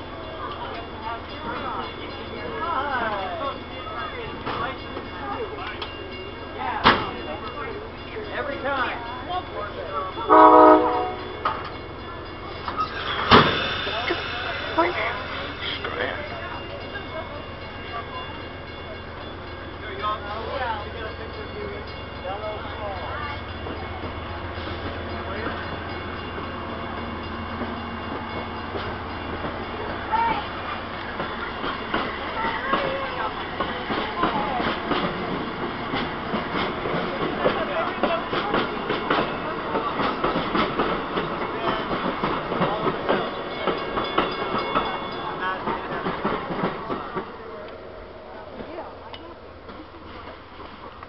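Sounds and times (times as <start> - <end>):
train wheels clattering: 0.1 - 47.8.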